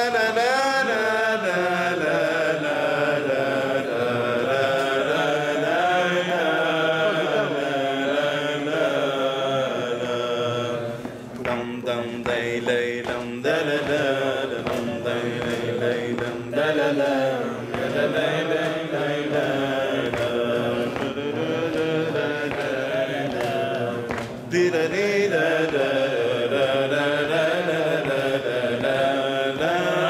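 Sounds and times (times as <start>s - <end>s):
man singing unaccompanied: 11.4s - 30.0s.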